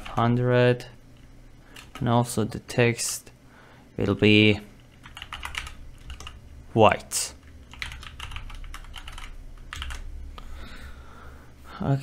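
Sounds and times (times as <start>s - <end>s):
keyboard typing: 1.2s - 2.1s, 4.8s - 6.4s, 7.4s - 10.1s.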